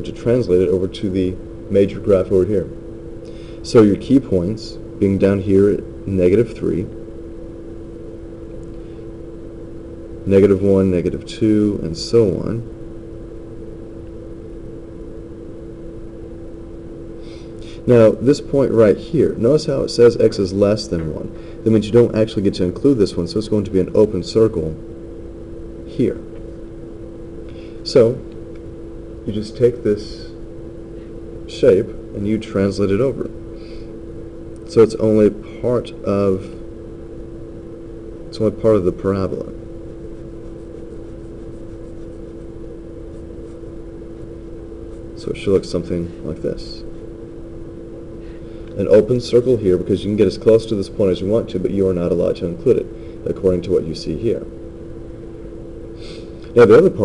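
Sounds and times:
constant tone hum: 0:00.0 - 0:57.0
pen scratching on paper: 0:40.1 - 0:42.4.

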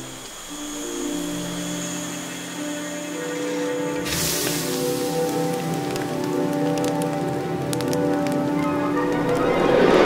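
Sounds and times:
background music: 0:00.0 - 0:10.0
dry leaves crackling in fire: 0:00.1 - 0:10.0.

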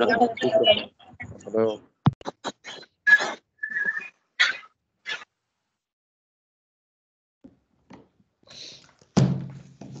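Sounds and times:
loud thunk: 0:09.2 - 0:09.6.

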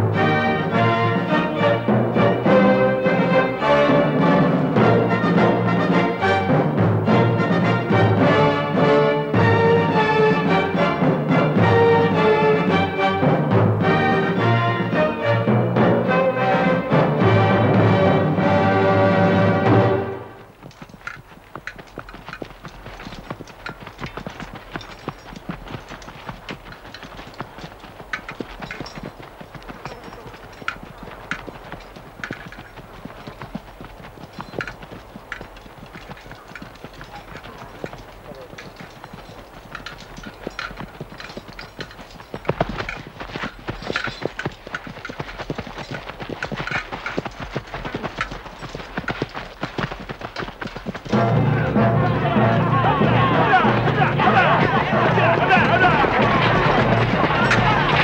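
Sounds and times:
horse hooves clopping on stony ground: 0:00.0 - 0:58.0.

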